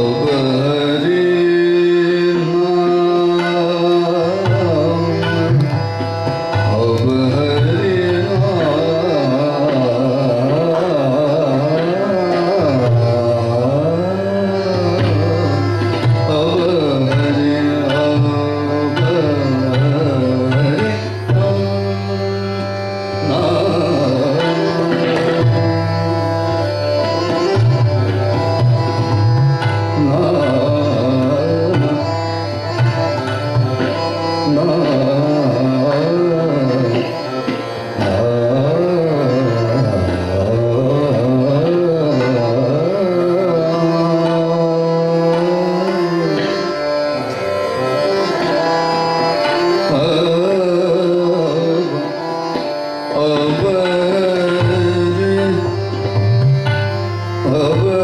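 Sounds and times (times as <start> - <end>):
man singing: 0.0 - 33.2, 33.8 - 47.2, 48.0 - 58.0
harmonium: 0.0 - 58.0
tabla drumming: 0.0 - 58.0
tanpura drone: 0.0 - 58.0.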